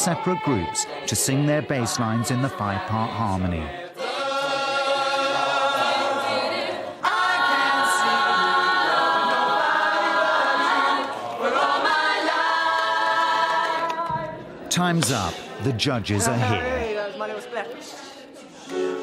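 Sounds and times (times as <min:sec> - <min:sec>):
choir singing a cappella: 0:00.0 - 0:19.0.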